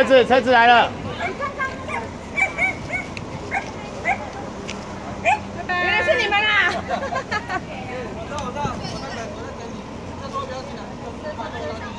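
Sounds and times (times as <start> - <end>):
dog yipping: 1.1 - 4.3, 5.2 - 5.5.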